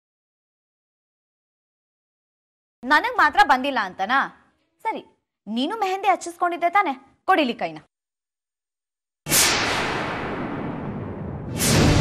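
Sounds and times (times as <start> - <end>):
dramatic whoosh: 9.3 - 12.0.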